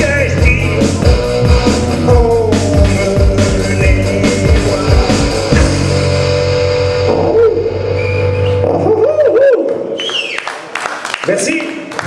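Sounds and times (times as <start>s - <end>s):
harmonica notes: 0.0s - 9.1s.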